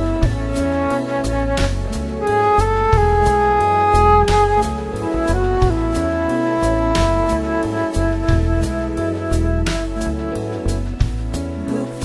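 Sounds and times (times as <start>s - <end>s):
bass guitar: 0.0s - 12.0s
drums: 0.0s - 12.0s
lead melody holding long notes: 0.0s - 12.0s.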